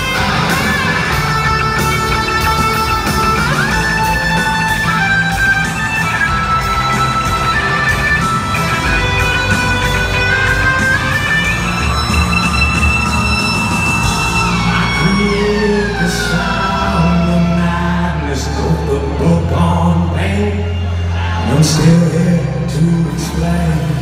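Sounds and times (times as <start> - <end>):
electric guitar long notes: 0.0 - 24.0
live rock band playing: 0.0 - 24.0.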